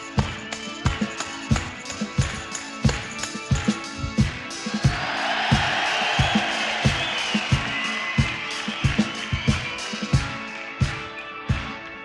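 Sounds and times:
drums keeping a steady beat: 0.0 - 11.8.

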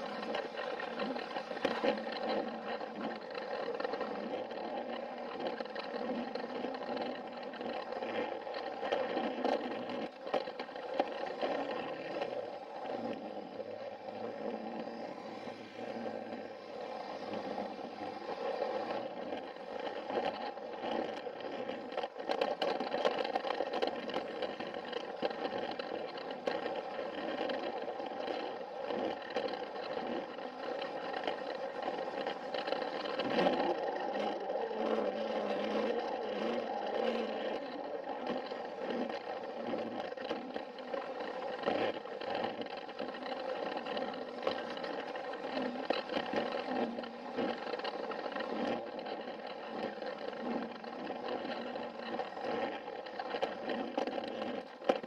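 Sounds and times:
toy train motor whining: 0.0 - 55.0.

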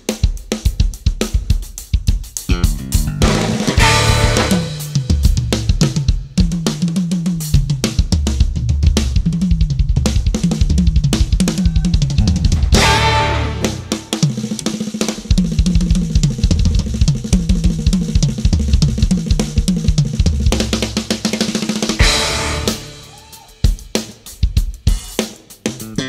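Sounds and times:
drum kit: 0.0 - 26.0
jazz band playing: 2.4 - 6.3, 11.1 - 15.3, 21.8 - 24.0, 25.7 - 26.0
bass line: 2.5 - 6.0, 8.6 - 14.2, 22.0 - 23.3.

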